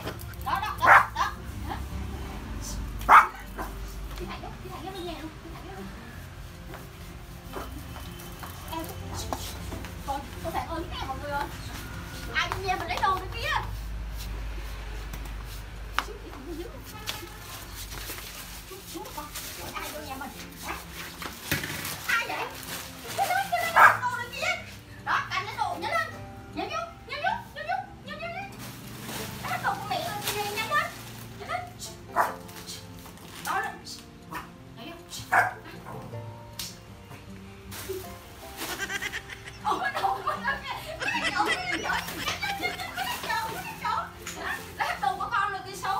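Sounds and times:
background music: 0.0 - 45.9
small dog barking: 0.8 - 1.3, 3.1 - 3.7, 23.8 - 24.1, 32.1 - 32.4, 35.3 - 36.0.

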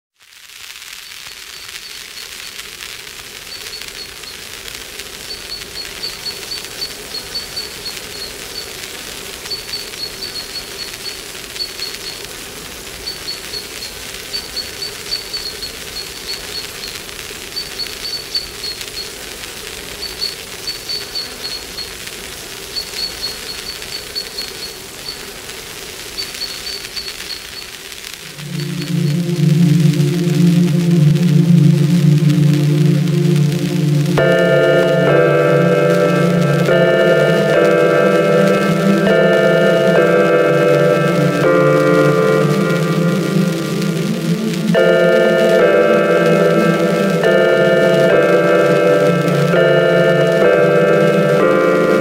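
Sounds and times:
steady hiss: 0.2 - 52.0
high-pitched chirping trills: 5.3 - 8.8, 9.4 - 12.3, 13.0 - 19.1, 20.0 - 22.0, 22.7 - 25.2, 28.2 - 52.0.

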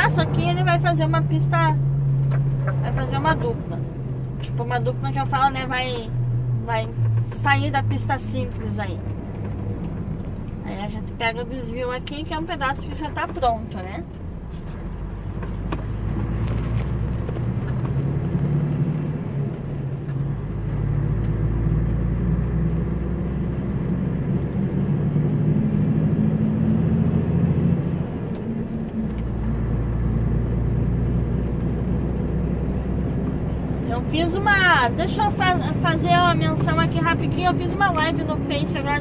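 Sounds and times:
truck diesel engine droning: 0.0 - 39.0.

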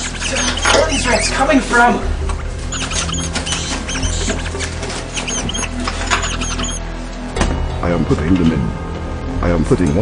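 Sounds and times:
rats squeaking: 0.0 - 1.6, 2.3 - 6.8.

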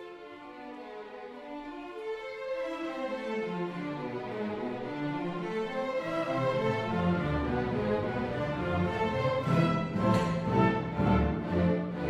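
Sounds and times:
symphony orchestra playing: 0.0 - 12.0.

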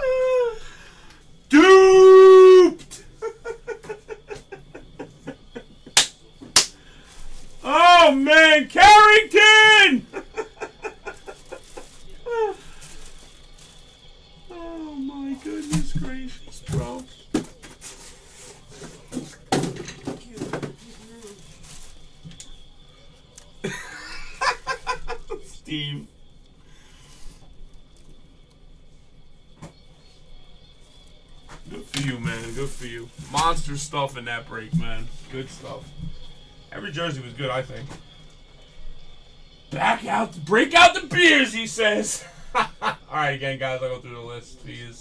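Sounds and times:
man calling out wordlessly: 1.5 - 2.8, 7.6 - 10.2
man's short rising cries: 1.5 - 2.8, 7.6 - 10.4.

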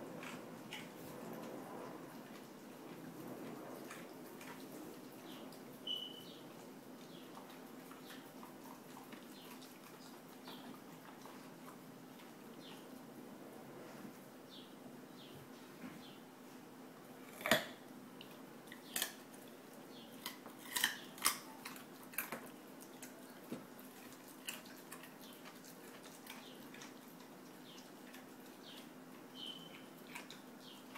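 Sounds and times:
dogs crunching carrots: 0.0 - 5.9, 6.5 - 12.7, 17.2 - 30.9.

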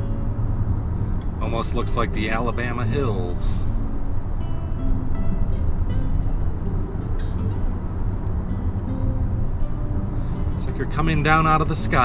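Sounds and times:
car tyres and engine rumble: 0.0 - 12.0.

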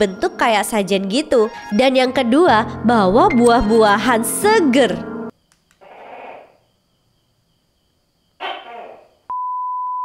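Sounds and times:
gecko calling: 5.7 - 6.8, 8.4 - 9.3.

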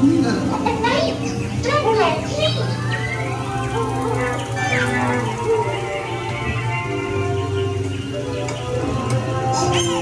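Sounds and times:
background music: 0.0 - 10.0
high voice-like calls: 0.6 - 6.1.

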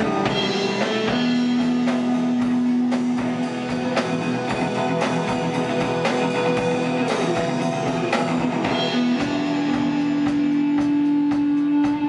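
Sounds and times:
drum kit: 0.0 - 12.0
electric guitars: 0.0 - 12.0.

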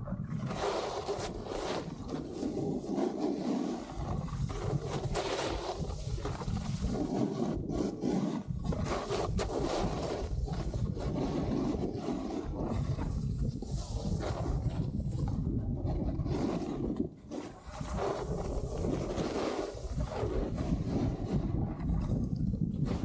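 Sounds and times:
wind rumble on microphone: 0.0 - 23.0
snowboard scraping snow: 0.4 - 23.0.

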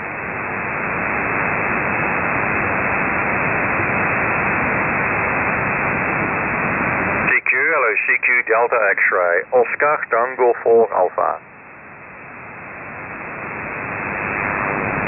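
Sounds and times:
radio receiver hiss: 0.0 - 15.0
voice over radio: 7.2 - 11.4.

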